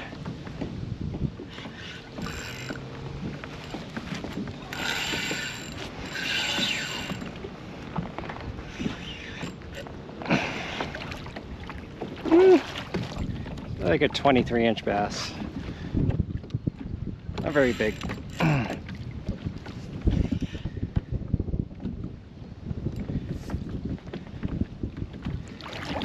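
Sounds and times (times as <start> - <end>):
fishing reel being wound: 4.7 - 7.3, 17.4 - 18.7.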